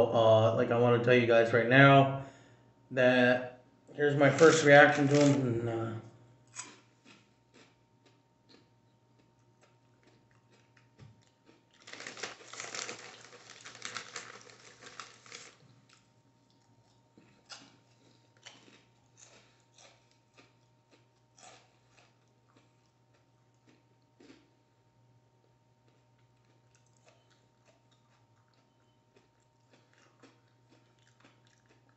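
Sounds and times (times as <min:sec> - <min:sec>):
chewing crunchy chips: 0:04.1 - 0:05.8, 0:06.5 - 0:24.6, 0:25.4 - 0:31.9.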